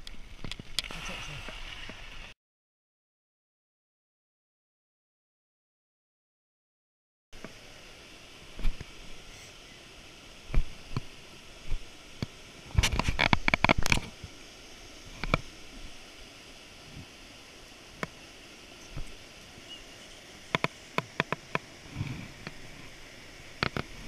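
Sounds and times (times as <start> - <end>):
small creek cascade rushing: 0.2 - 2.3, 7.4 - 24.0.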